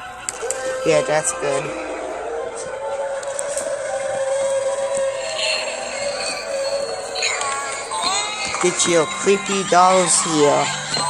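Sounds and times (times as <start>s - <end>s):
background music: 0.0s - 11.0s
busy shop noise: 0.0s - 11.0s.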